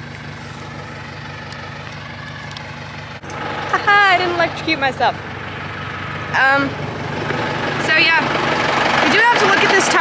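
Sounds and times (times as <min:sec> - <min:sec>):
tractor engine idling: 0:00.0 - 0:10.0.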